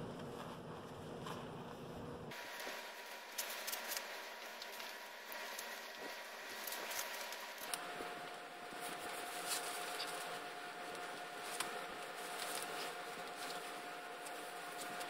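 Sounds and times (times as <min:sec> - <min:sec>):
faint steady whine: 0:00.0 - 0:15.0
small clicks and scrapes: 0:02.6 - 0:15.0.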